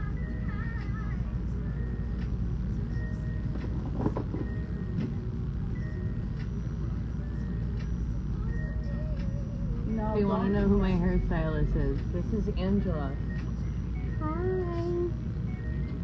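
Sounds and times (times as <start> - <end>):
low mechanical rumble: 0.0 - 16.0.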